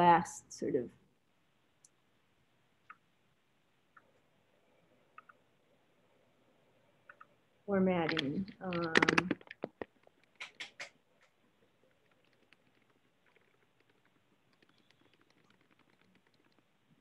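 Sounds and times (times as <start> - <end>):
computer keyboard typing: 5.2 - 5.4, 8.0 - 16.8.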